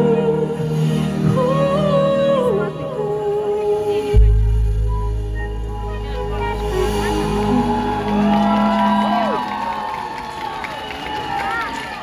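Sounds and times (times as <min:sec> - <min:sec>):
live pop band playing: 0:00.0 - 0:09.6.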